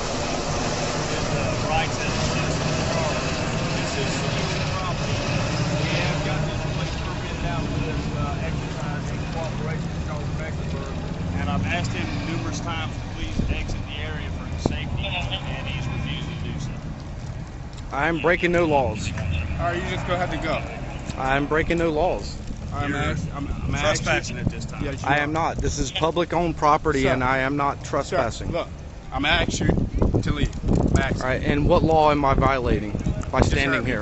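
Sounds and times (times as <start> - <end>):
low engine drone: 0.0 - 29.2
faint voices talking: 0.4 - 34.0.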